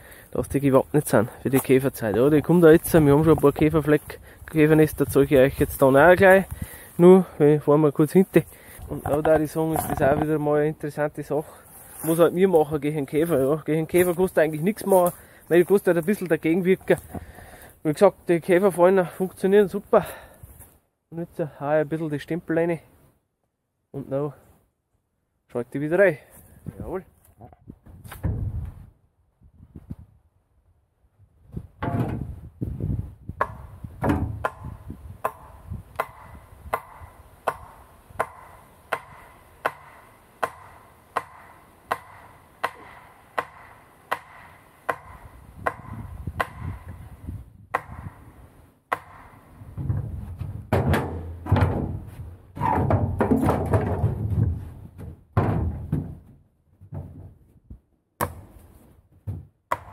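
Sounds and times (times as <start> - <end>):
hammer driving wooden stake: 8.9 - 10.4, 16.8 - 17.6, 31.8 - 32.3, 33.4 - 48.3, 48.9 - 57.3, 58.2 - 59.9.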